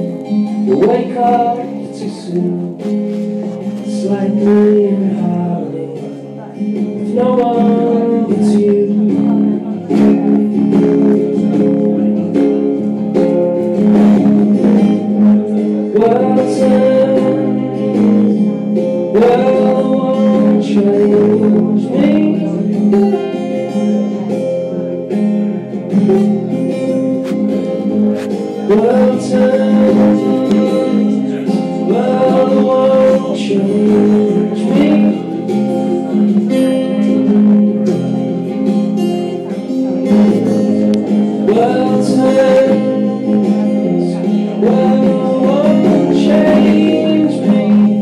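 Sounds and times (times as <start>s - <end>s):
acoustic guitar strumming: 0.0s - 48.0s.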